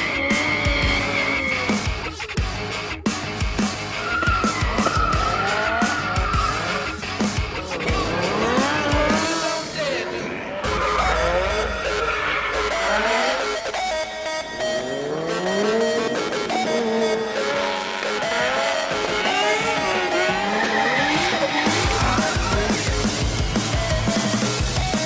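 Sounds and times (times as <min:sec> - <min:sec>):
background music: 0:00.0 - 0:25.0
car engine revving: 0:00.0 - 0:25.0
tyres squealing: 0:17.3 - 0:23.2.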